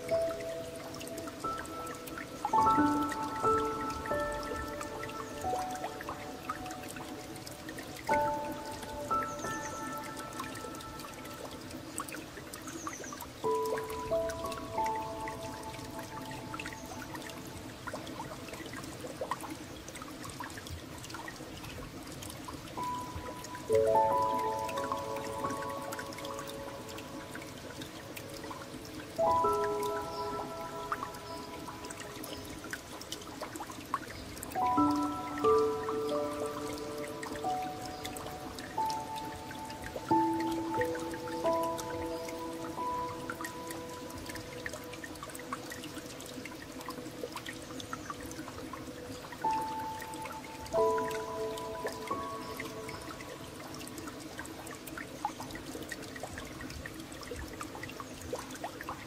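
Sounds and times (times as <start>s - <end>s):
trickling dripping water: 0.0s - 59.0s.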